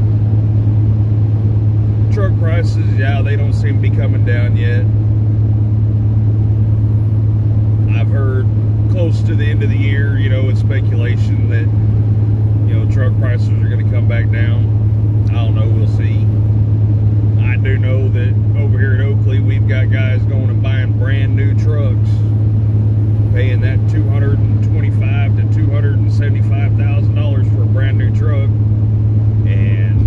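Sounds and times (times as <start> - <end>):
road noise: 0.0 - 30.0
truck engine drone: 0.0 - 30.0
man talking: 2.1 - 4.9, 7.9 - 11.8, 12.6 - 16.4, 17.4 - 22.3, 23.3 - 28.6, 29.4 - 30.0.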